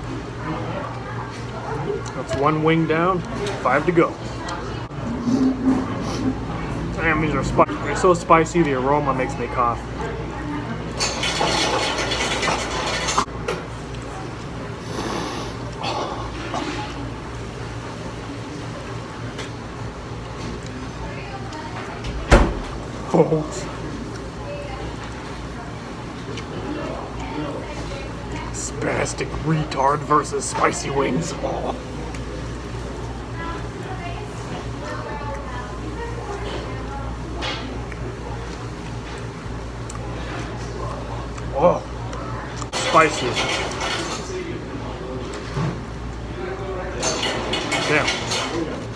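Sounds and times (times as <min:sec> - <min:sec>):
low background hum: 0:00.0 - 0:48.9.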